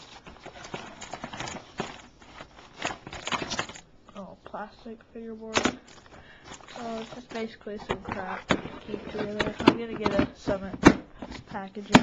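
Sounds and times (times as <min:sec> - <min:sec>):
plastic bags crinkling: 0:00.0 - 0:03.9, 0:05.8 - 0:10.6
clicks and knocks of small items: 0:05.5 - 0:12.0.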